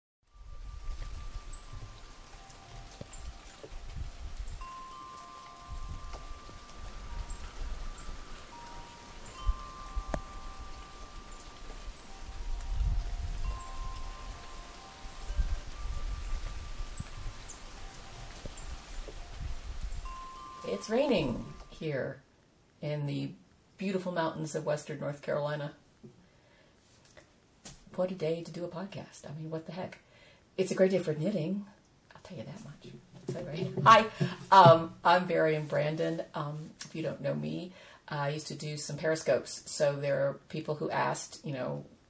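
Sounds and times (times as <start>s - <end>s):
falling rain: 0.2s - 21.8s, 32.7s - 35.9s
wind chimes ringing: 0.3s - 21.7s.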